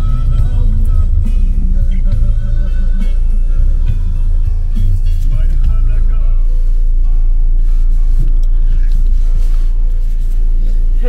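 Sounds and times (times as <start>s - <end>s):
background music: 0.0s - 11.0s
car engine and tyres rumble: 0.0s - 11.0s.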